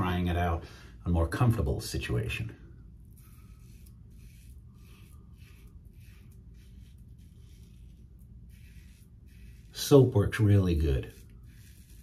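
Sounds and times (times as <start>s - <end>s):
razor scraping stubble: 3.0s - 12.0s.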